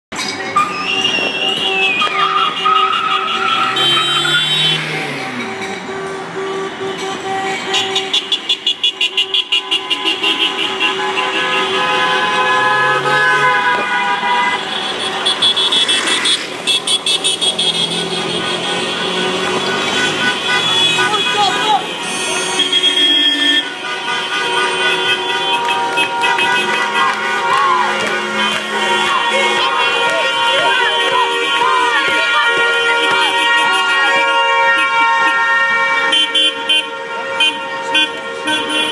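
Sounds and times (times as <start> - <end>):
crowd voices: 0.1 - 8.0, 10.5 - 38.9
car horns honking: 0.1 - 38.9
short rhythmic horn beeps: 0.5 - 10.6.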